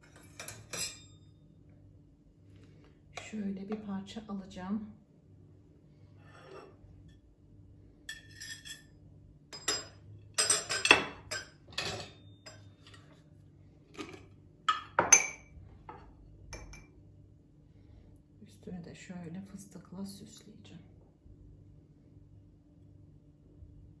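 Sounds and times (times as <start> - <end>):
spoon and glass jar clinking: 0.0 - 1.1, 8.1 - 8.9, 9.5 - 13.0, 14.7 - 15.5
metal server scraping on plate: 6.2 - 6.8.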